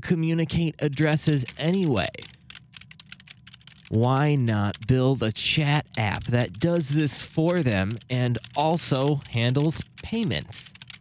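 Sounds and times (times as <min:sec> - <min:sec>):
keyboard key clicks: 0:01.2 - 0:05.1, 0:05.9 - 0:11.0.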